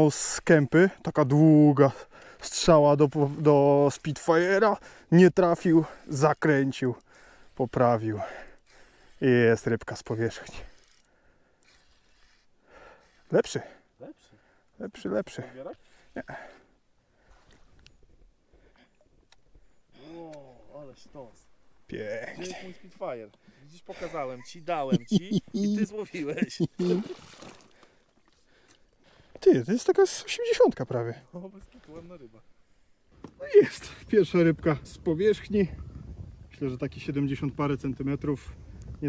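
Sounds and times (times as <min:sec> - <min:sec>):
faint breath: 0:02.0 - 0:02.4, 0:04.8 - 0:05.1, 0:07.0 - 0:07.6, 0:08.2 - 0:09.2, 0:10.6 - 0:14.8, 0:15.8 - 0:17.8, 0:18.5 - 0:20.3, 0:27.6 - 0:29.4.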